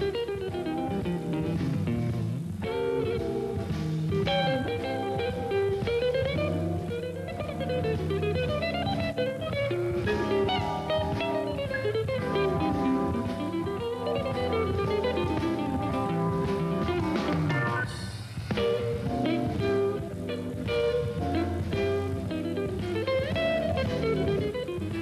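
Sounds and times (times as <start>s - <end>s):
jazz electric guitar solo: 0.0s - 25.0s
low band backing: 0.0s - 25.0s.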